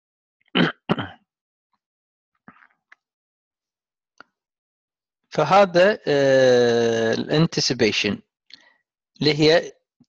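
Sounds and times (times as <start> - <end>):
person clearing throat: 0.6 - 1.2.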